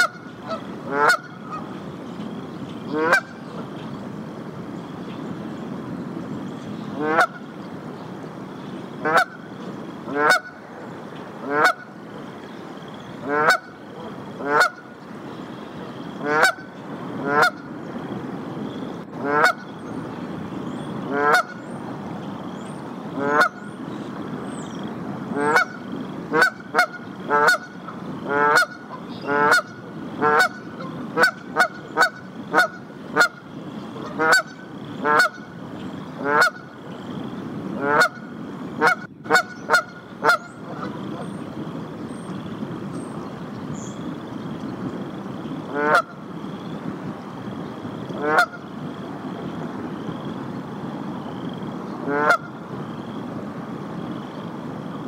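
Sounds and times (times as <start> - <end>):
goose honking: 0.0 - 1.7, 2.9 - 3.3, 7.0 - 7.4, 9.0 - 9.4, 10.1 - 10.6, 11.4 - 11.9, 13.2 - 13.8, 14.4 - 14.9, 16.2 - 17.7, 19.2 - 19.7, 21.1 - 21.6, 23.2 - 23.6, 25.4 - 33.4, 34.0 - 35.5, 36.2 - 36.7, 37.8 - 41.3, 45.7 - 46.2, 48.2 - 48.6, 52.0 - 52.5.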